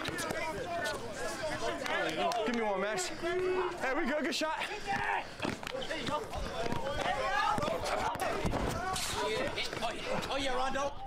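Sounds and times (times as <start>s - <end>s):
men calling out: 0.0s - 11.0s.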